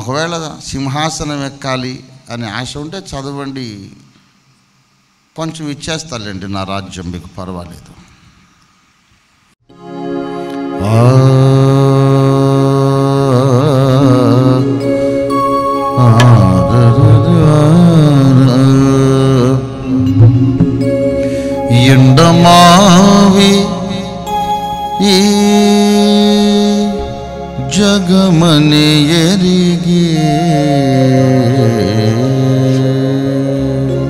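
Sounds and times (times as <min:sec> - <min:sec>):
sustained musical accompaniment: 0:09.6 - 0:34.0
man singing a chant: 0:10.8 - 0:15.0, 0:16.0 - 0:20.0, 0:21.7 - 0:24.3, 0:25.0 - 0:34.0.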